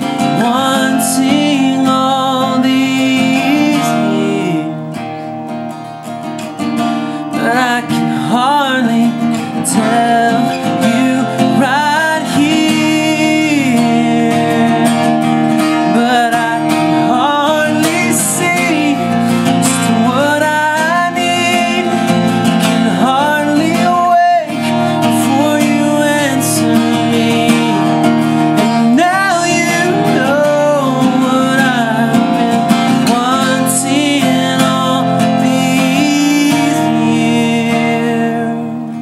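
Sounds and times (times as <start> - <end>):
man singing: 0.0 - 5.2, 7.0 - 39.0
strummed acoustic guitar: 0.0 - 39.0.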